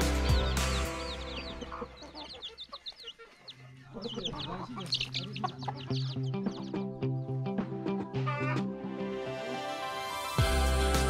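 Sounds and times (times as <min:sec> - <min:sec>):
chicks peeping: 0:00.0 - 0:08.7
hen clucking: 0:00.0 - 0:08.8.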